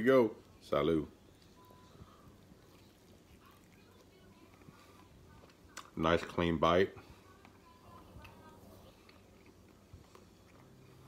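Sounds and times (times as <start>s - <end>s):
biting and chewing: 2.2s - 6.4s, 7.0s - 11.0s.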